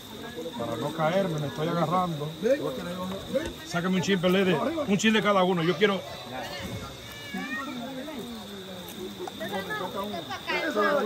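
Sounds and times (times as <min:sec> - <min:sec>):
background chatter of people: 0:00.0 - 0:11.0.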